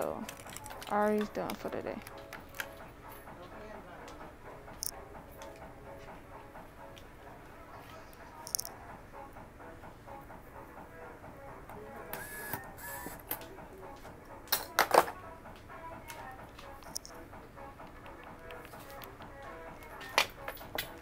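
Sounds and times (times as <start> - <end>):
low background music: 0.0 - 21.0.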